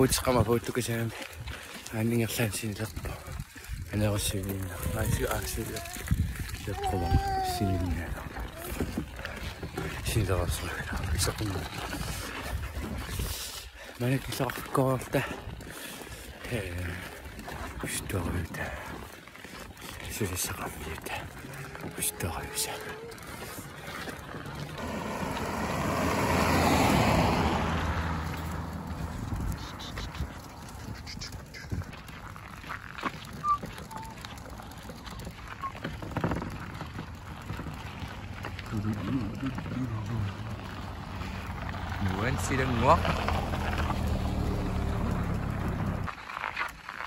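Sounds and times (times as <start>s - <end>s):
vehicle passing by: 20.4s - 31.3s, 37.6s - 46.1s.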